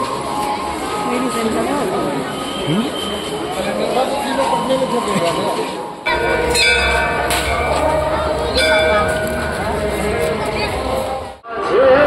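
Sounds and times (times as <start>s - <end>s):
metal bells ringing: 6.1s - 11.4s
steady low rumble: 6.1s - 11.4s.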